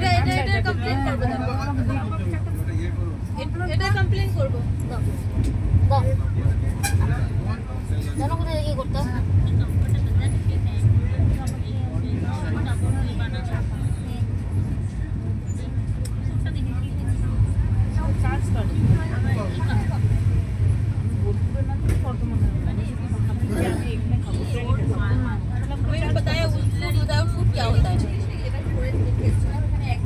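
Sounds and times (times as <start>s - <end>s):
passengers murmuring: 0.0s - 30.0s
train coach rumble: 0.0s - 30.0s.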